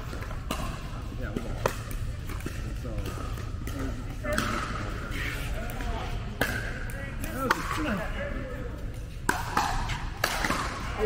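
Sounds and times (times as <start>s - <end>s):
men talking: 5.2s - 9.1s
paddles hitting plastic ball: 8.9s - 11.0s.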